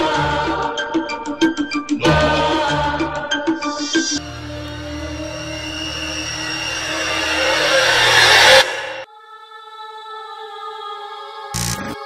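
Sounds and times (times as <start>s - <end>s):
low rumbling drone: 4.2s - 9.1s
rising whooshing hiss: 4.2s - 9.1s.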